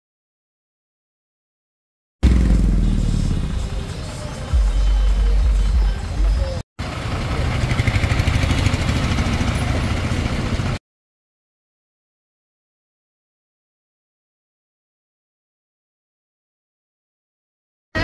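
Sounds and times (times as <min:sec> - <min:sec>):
street noise: 0:02.2 - 0:10.8.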